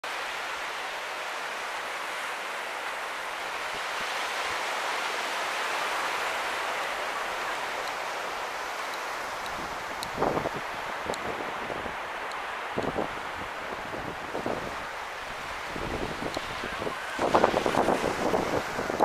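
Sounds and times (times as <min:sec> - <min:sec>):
ocean surf breaking: 0:00.0 - 0:19.0.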